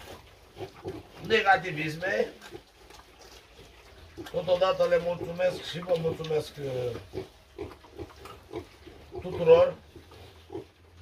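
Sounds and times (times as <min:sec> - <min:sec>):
pigs grunting: 0:00.0 - 0:11.0.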